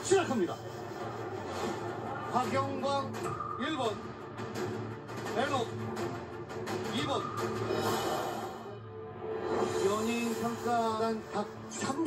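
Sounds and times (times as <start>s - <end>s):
television background music: 0.0s - 12.0s
person speaking on television: 9.8s - 12.0s.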